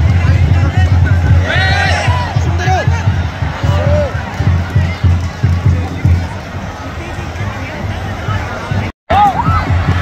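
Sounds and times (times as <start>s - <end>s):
drums beating: 0.0s - 10.0s
stadium crowd: 0.0s - 10.0s
people shouting: 1.3s - 5.1s, 9.1s - 10.0s.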